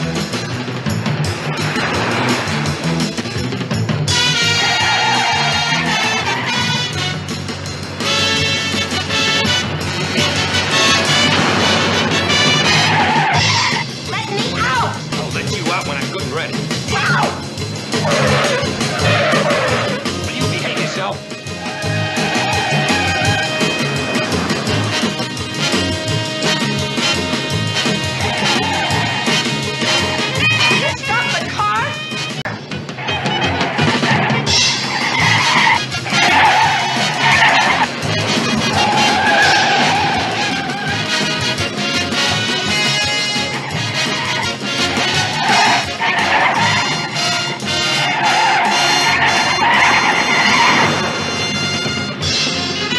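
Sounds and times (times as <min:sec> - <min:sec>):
car tyres squealing: 0:00.0 - 0:15.0, 0:16.8 - 0:31.6, 0:32.2 - 0:52.9
dramatic chase music: 0:00.0 - 0:52.9.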